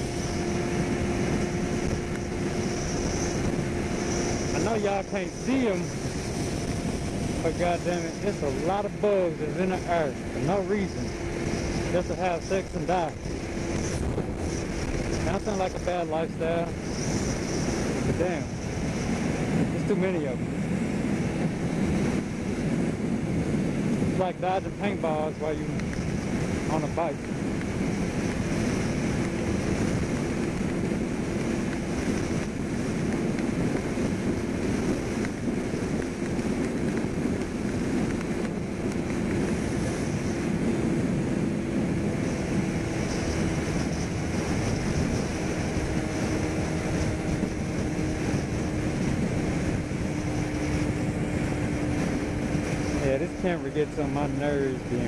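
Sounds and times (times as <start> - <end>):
motorcycle engine steady tone: 0.0 - 55.0
wind rushing over microphone: 0.0 - 55.0.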